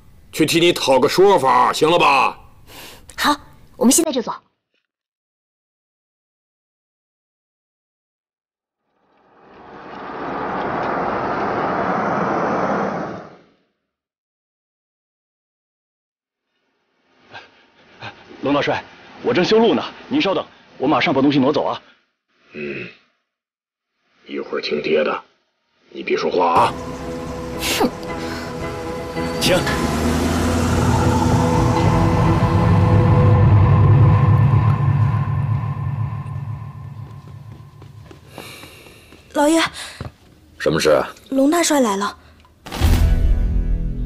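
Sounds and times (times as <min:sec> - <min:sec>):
rushing noise: 0:09.3 - 0:13.4, 0:26.6 - 0:38.9
held orchestral chords: 0:26.6 - 0:38.2
low rumbling drone: 0:26.6 - 0:38.6.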